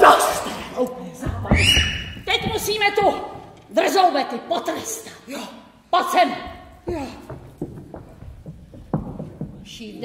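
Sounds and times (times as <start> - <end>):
footsteps on stage floor: 1.2 - 3.7, 6.4 - 10.0.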